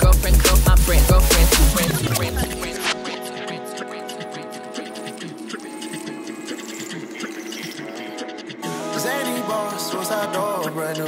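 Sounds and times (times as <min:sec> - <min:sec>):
electronic music over loudspeakers: 0:00.0 - 0:11.0.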